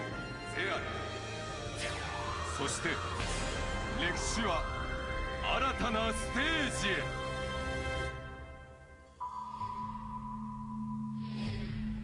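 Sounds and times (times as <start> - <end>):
low sustained drone: 9.2 - 12.0.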